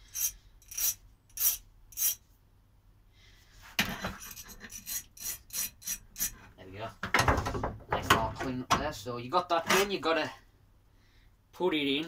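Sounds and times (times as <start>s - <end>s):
hand file rasping steel: 0.0s - 2.2s, 4.2s - 6.4s.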